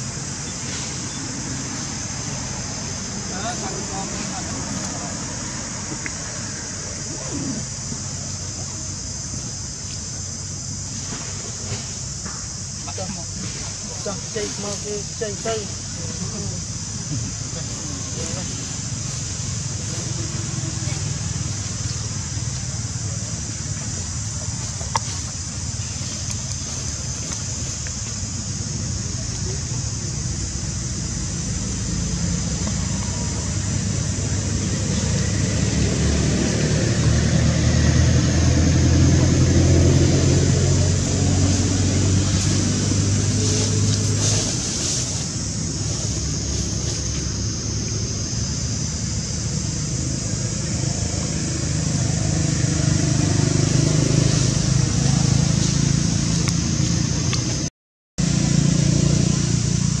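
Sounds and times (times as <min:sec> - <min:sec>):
low engine hum: 0:00.0 - 1:00.0
steady high hiss: 0:00.0 - 1:00.0.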